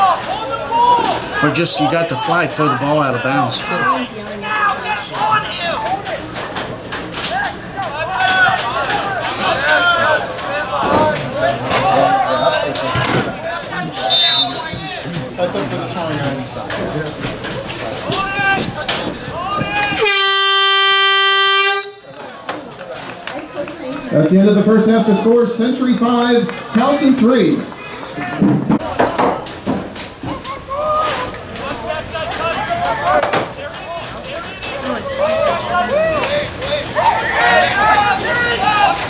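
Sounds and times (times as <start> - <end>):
voices calling out: 0.0 - 39.0
game horn blast: 19.9 - 22.0.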